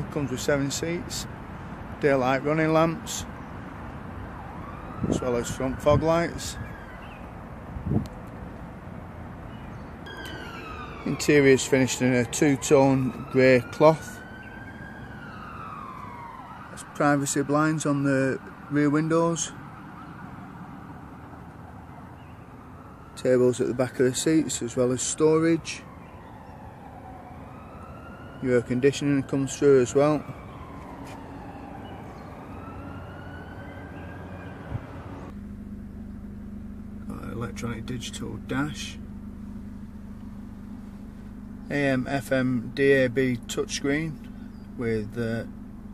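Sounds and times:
siren wailing: 4.0 - 7.4, 10.0 - 35.3.

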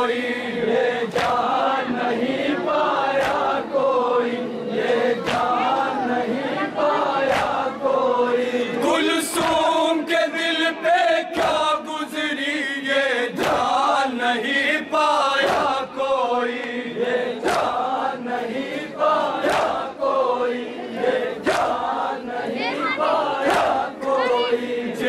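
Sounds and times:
male voices chanting a lament: 0.0 - 25.0.

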